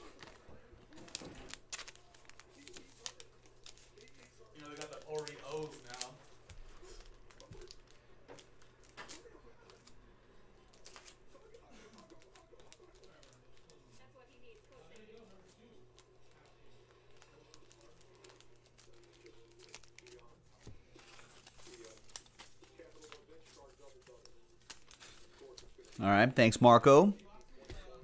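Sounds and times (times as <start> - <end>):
foil wrappers crinkling and tearing: 0.0 - 26.0, 27.2 - 28.0.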